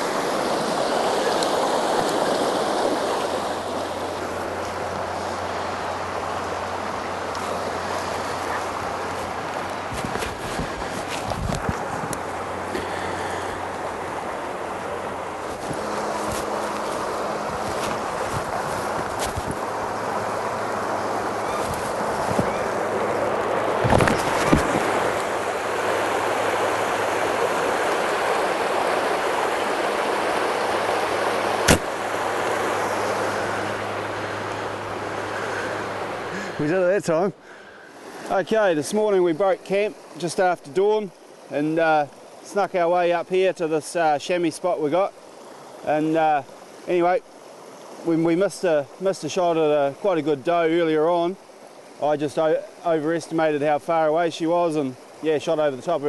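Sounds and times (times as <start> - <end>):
creek running: 0.0 - 56.0
knocks and rustles: 15.4 - 19.6, 21.6 - 22.6, 23.8 - 25.2
sharp snap: 31.6 - 32.0.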